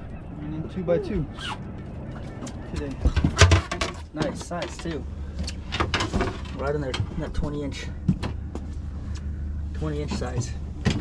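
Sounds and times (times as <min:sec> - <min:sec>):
thumps and knocks on boat deck: 0:10.1 - 0:11.0.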